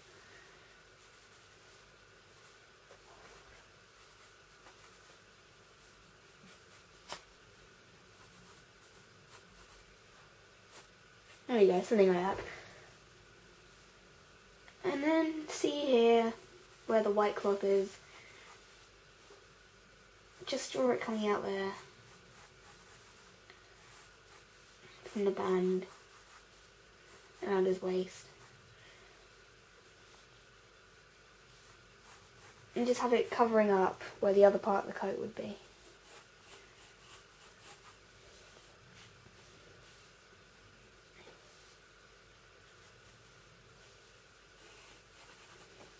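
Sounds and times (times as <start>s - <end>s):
pencil scratching on paper: 8.1s - 9.9s, 20.5s - 28.5s, 31.6s - 33.7s, 35.6s - 39.1s, 42.8s - 45.9s.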